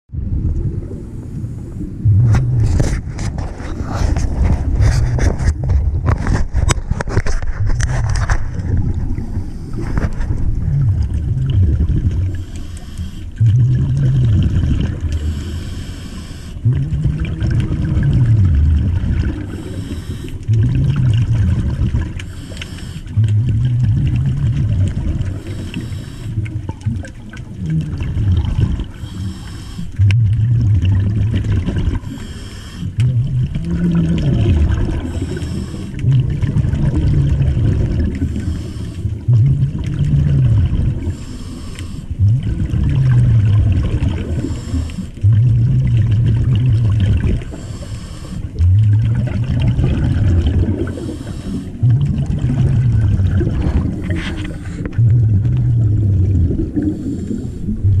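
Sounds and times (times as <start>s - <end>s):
exhaled bubbles underwater: 0.1s - 58.0s
scuba regulator inhale hiss: 12.3s - 13.4s, 15.2s - 16.6s, 19.5s - 20.5s, 22.2s - 23.1s, 25.4s - 26.5s, 28.9s - 30.0s, 32.0s - 33.0s, 35.1s - 36.0s, 38.3s - 39.1s, 41.0s - 42.2s, 44.3s - 45.2s, 47.5s - 48.6s, 50.8s - 51.8s, 56.9s - 57.8s.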